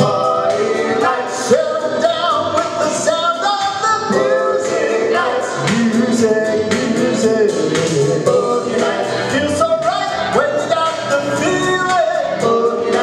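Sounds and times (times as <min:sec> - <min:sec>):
backing track with a beat: 0:00.0 - 0:13.0
male vocal group singing harmony: 0:00.0 - 0:13.0.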